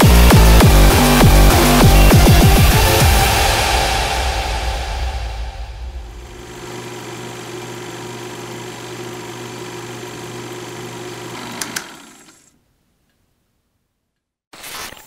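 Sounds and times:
heavy bass music: 0.0s - 6.4s.

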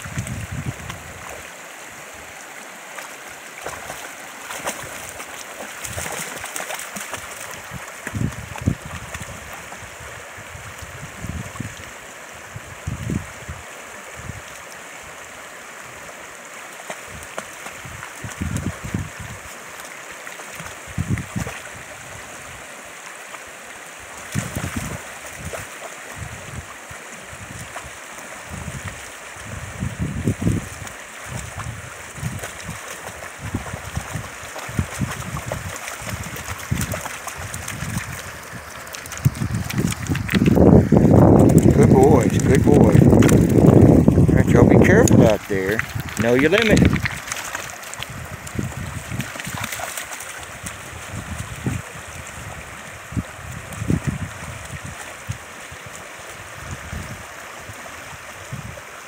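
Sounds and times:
creek running over stones: 0.0s - 59.0s.

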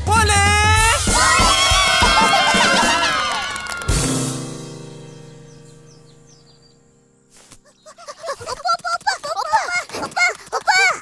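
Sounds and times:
music sting: 1.0s - 6.2s
high bird chirps: 3.9s - 8.6s
high-pitched cartoon voice crying: 7.8s - 11.0s.

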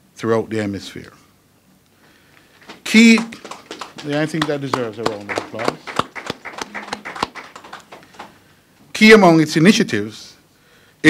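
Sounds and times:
small audience applause: 2.5s - 8.4s.

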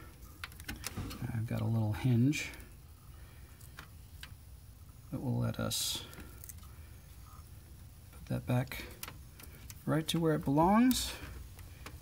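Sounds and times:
soft plastic clicks: 8.1s - 12.0s.

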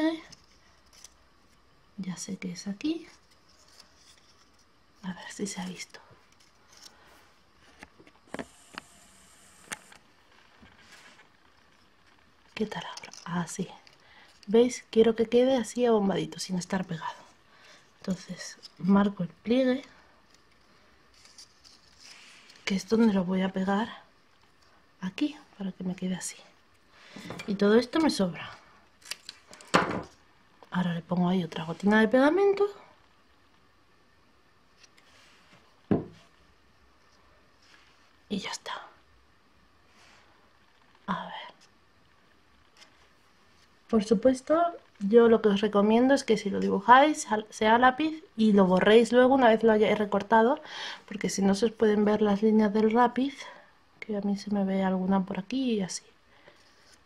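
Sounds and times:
thump on wooden tabletop: 29.7s - 30.1s, 35.9s - 36.2s.

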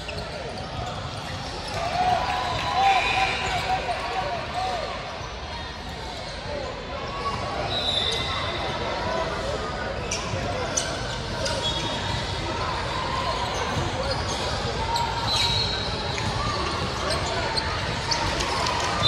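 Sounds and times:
sneakers squeaking on court: 0.0s - 1.8s, 13.4s - 19.0s
players and spectators voices: 0.0s - 19.0s.

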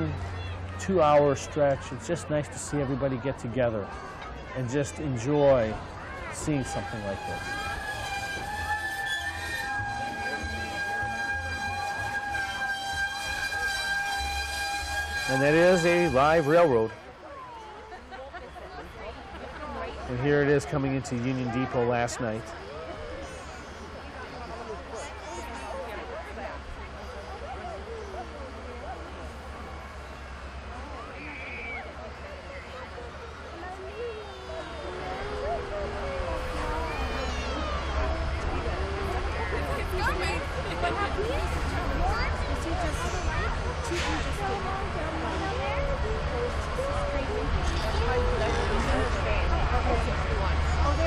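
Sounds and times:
diesel locomotive engine rumble: 0.0s - 21.2s, 22.4s - 51.0s
crowd chattering: 0.0s - 51.0s.

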